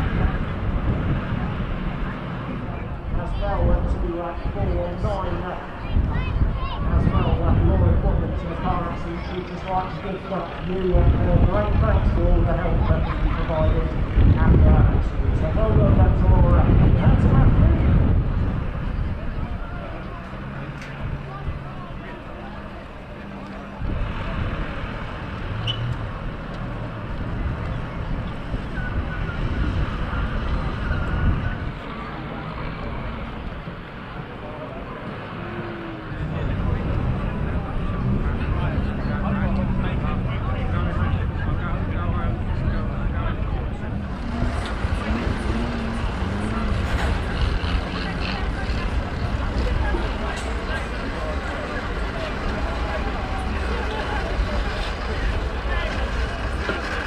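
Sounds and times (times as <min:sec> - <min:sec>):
indistinct voices: 0:00.0 - 0:57.0
tractor engines running: 0:00.0 - 0:57.0.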